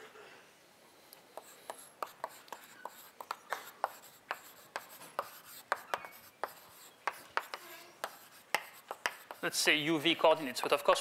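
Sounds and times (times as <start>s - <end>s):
chalk on a blackboard: 1.3s - 10.2s.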